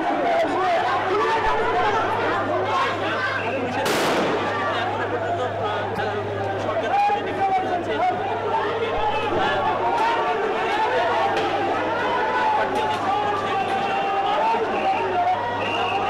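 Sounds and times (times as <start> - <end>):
crowd of men shouting: 0.0 - 16.0
faint sharp cracks: 3.9 - 4.6.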